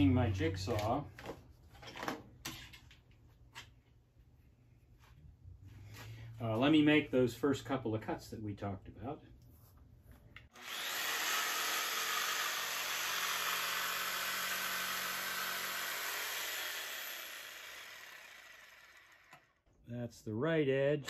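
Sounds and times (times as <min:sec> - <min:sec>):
electric jigsaw cutting wood: 0:10.5 - 0:19.6.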